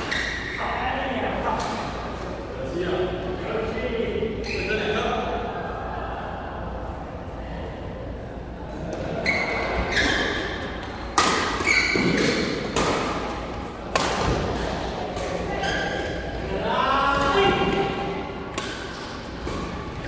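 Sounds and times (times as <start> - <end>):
rackets striking shuttlecock: 11.1 - 15.4, 18.5 - 19.8.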